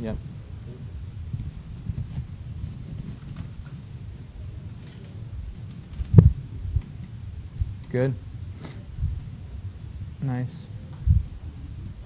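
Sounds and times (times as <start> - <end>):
faint low thumps: 0.0 - 12.0.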